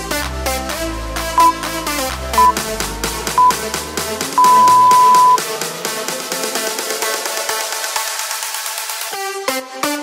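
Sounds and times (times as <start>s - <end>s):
electronic dance music: 1.4s - 1.6s, 2.4s - 2.6s, 3.4s - 3.6s, 4.4s - 5.4s
timer beeps: 2.4s - 2.6s, 3.4s - 3.6s, 4.4s - 5.4s.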